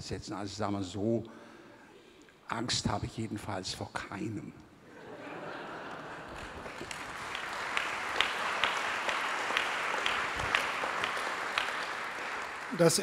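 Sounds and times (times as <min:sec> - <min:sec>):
audience applauding: 0:05.7 - 0:13.0.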